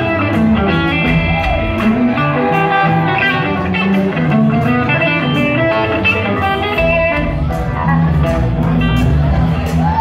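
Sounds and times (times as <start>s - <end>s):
electric guitars: 0.0s - 10.0s
live rock band playing: 0.0s - 10.0s.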